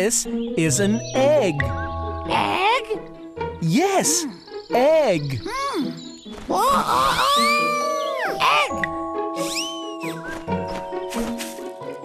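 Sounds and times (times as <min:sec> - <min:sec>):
children's background music: 0:00.0 - 0:12.0
cartoon character excited voice: 0:06.6 - 0:08.8.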